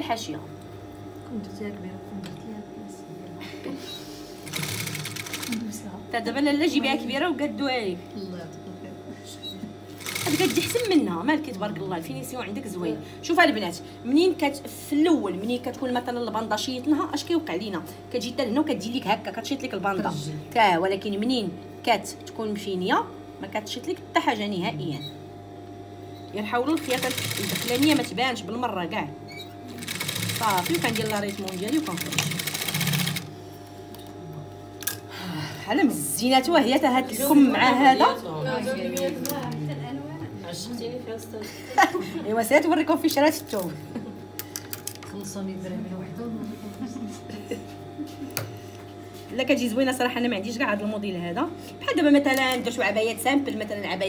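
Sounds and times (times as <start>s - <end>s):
faint hum: 0.0s - 54.0s
sewing machine stitching: 4.4s - 5.6s, 10.0s - 10.9s, 26.8s - 28.2s, 29.8s - 33.3s.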